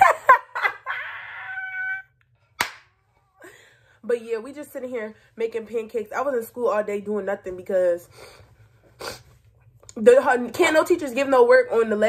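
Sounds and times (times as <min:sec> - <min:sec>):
woman laughing and squealing: 0:00.0 - 0:02.2
sharp smacks: 0:02.6 - 0:02.9.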